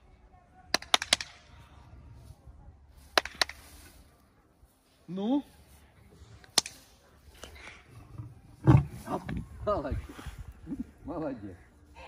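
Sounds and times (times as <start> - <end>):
sharp hand claps: 0.7 - 1.4, 3.1 - 3.7.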